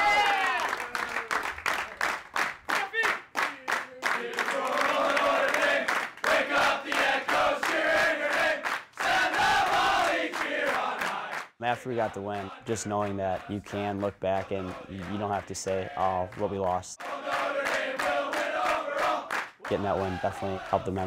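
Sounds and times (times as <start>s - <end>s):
rhythmic clapping: 0.3s - 21.0s
men singing together: 4.0s - 16.3s, 17.0s - 21.0s.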